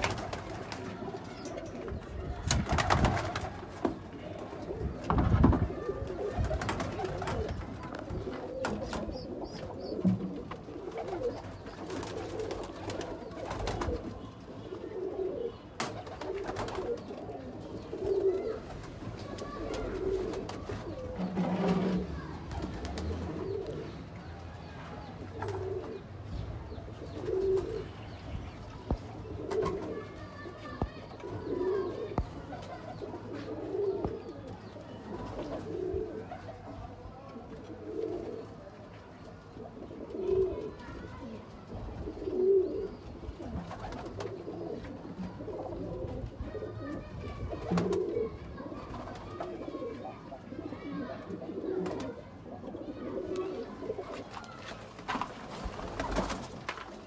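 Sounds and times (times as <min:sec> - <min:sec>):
pigeons cooing: 0:02.9 - 0:24.3, 0:25.1 - 0:26.1, 0:26.7 - 0:28.3, 0:29.0 - 0:38.7, 0:39.5 - 0:54.6.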